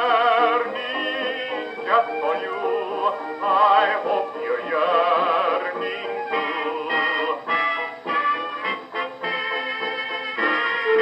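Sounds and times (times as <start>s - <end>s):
dance band music on old record: 0.0s - 11.0s.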